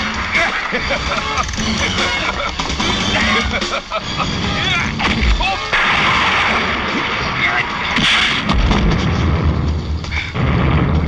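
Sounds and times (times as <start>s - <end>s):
deep rumble: 0.0s - 11.0s
heavy rain pouring: 0.0s - 11.0s
sharp hit: 0.0s - 11.0s.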